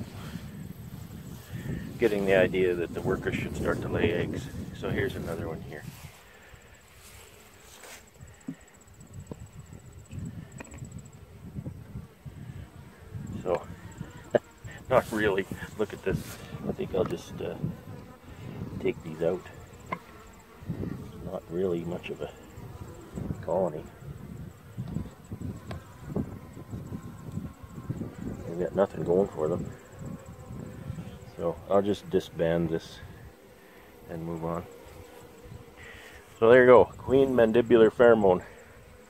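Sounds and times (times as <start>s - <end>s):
honey bees buzzing: 0.0s - 39.0s.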